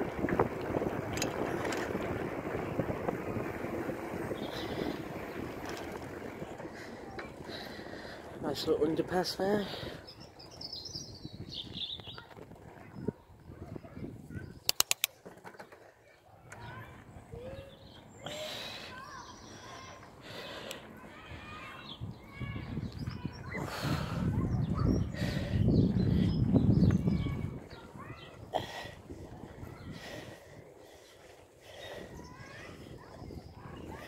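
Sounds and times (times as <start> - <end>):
rumbling wind: 0.0 - 15.0, 16.6 - 34.0
bicycle riding noise: 0.0 - 34.0
birds chirping: 0.3 - 34.0
sharp clicks: 14.6 - 15.2.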